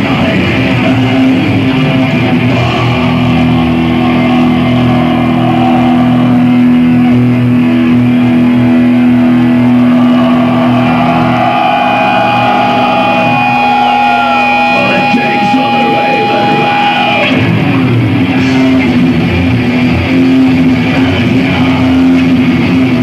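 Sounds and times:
distorted electric guitar chord: 0.0 - 23.0.

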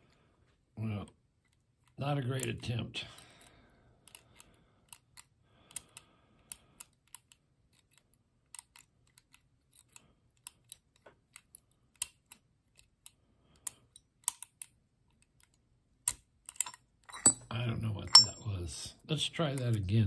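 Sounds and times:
lock pick clicking in padlock: 4.1 - 17.4.

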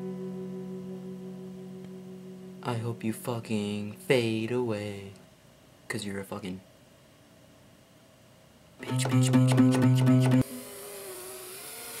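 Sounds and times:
acoustic guitar strumming: 0.0 - 4.3, 8.8 - 10.5
lingering guitar note: 0.0 - 4.3, 8.8 - 10.4.

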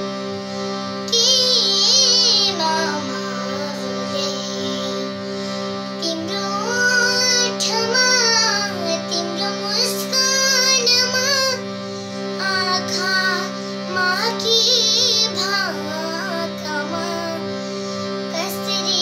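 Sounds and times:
harmonium holding a chord: 0.0 - 19.0
girl singing ornamented melody: 1.0 - 19.0.

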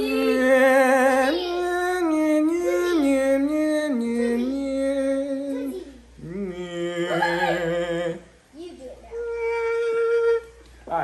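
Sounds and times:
person humming: 0.0 - 8.3, 9.1 - 10.6.

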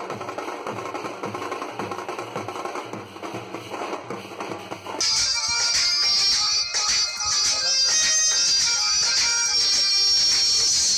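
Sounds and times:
drums beaten with sticks: 0.0 - 10.9
recorded music: 4.8 - 10.9.

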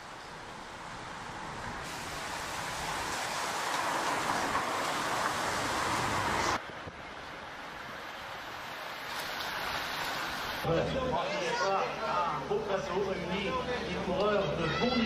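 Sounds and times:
tyre and wind noise: 0.0 - 10.7
bicycles rushing past: 0.1 - 10.6.

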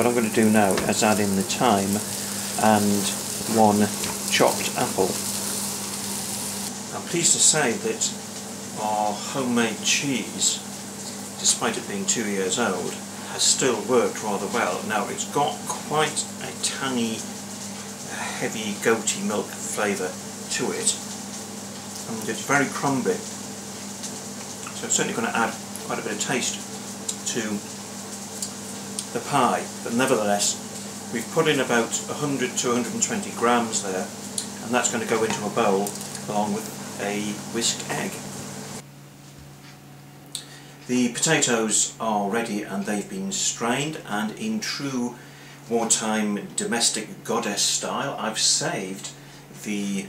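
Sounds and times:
faint even hiss: 0.0 - 38.8
food sizzling in a frying pan: 0.0 - 38.8
steady low hum: 0.0 - 50.0.

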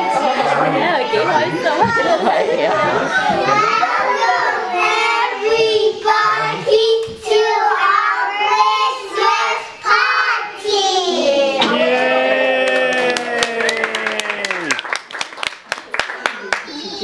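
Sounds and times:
young children singing: 0.0 - 12.1.

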